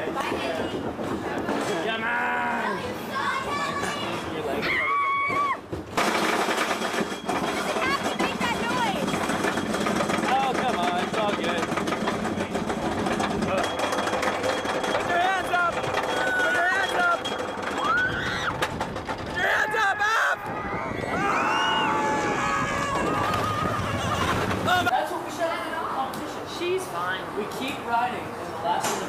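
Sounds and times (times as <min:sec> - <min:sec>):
roller coaster rattling on track: 0:00.0 - 0:26.4
wind on microphone: 0:20.4 - 0:24.9.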